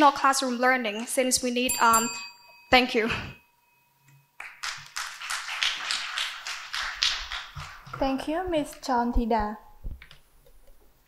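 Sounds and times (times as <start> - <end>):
audience applauding: 4.4 - 7.9.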